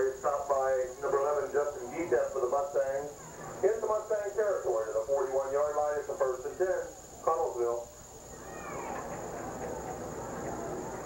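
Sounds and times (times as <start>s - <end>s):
background murmur: 0.0s - 11.0s.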